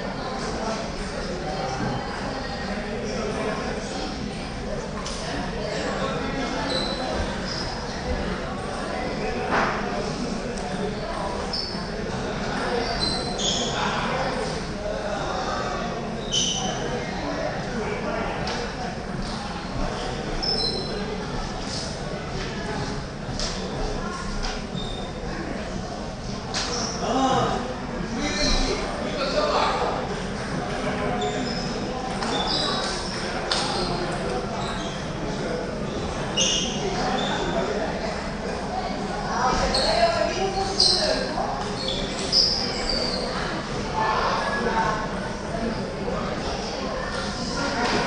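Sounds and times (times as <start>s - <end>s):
indistinct chatter of voices: 0.0s - 48.0s
voices talking: 26.5s - 48.0s.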